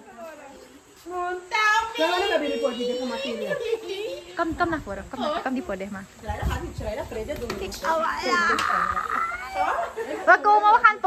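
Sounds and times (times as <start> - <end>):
women talking: 0.0 - 11.0.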